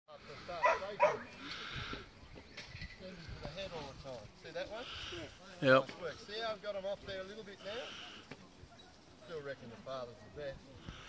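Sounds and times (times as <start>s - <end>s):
puppy barking: 0.6s - 1.3s.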